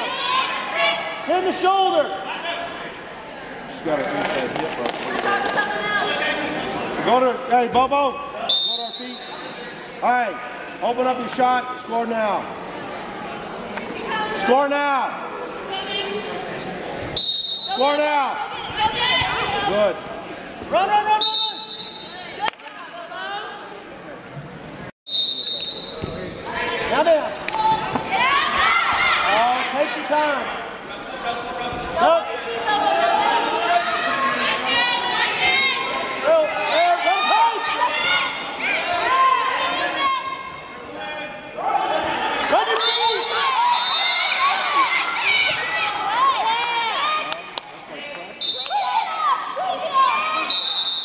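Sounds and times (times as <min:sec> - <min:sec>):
voices in a hall: 0:00.0 - 0:51.0
referee's whistle blast: 0:08.5 - 0:09.5, 0:25.1 - 0:26.2, 0:50.4 - 0:51.0
person shouting coaching: 0:20.7 - 0:21.7.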